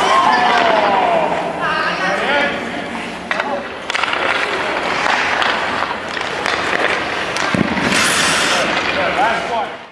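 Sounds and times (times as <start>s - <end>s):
stick and puck clacks: 0.2s - 0.9s, 3.2s - 9.9s
skate blades scraping ice: 3.3s - 9.8s.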